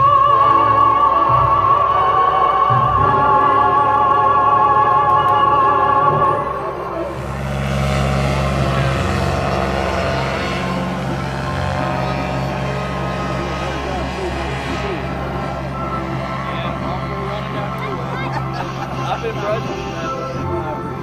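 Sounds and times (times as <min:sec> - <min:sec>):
ultralight engine humming: 0:00.0 - 0:21.0.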